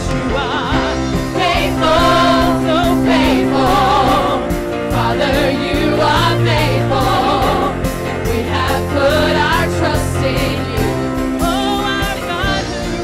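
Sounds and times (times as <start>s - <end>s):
band with beat and bass: 0.0s - 13.0s
gospel choir singing: 0.0s - 13.0s.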